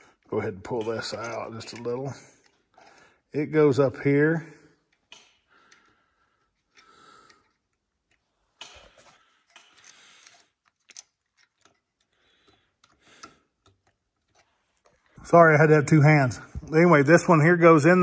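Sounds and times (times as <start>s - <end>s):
small metal parts clicking: 4.9s - 15.1s.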